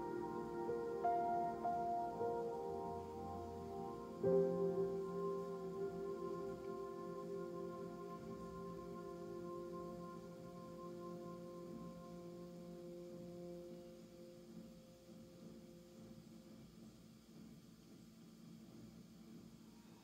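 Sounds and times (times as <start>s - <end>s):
bell-like ambient music tones: 0.0s - 16.2s.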